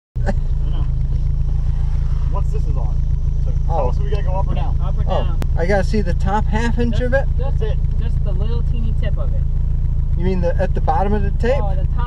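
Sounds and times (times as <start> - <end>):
car engine idling: 0.2 - 12.0
voices talking outside: 0.2 - 12.0.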